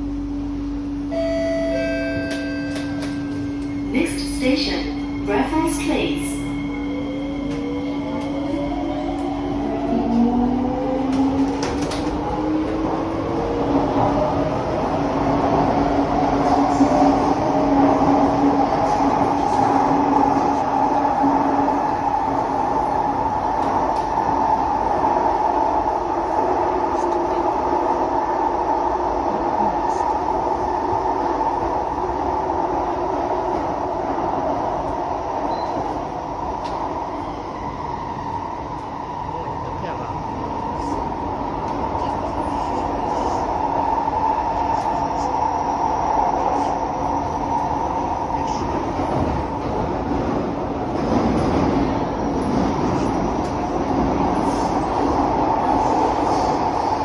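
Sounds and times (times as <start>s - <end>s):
wheels rumbling on rail: 0.0s - 57.0s.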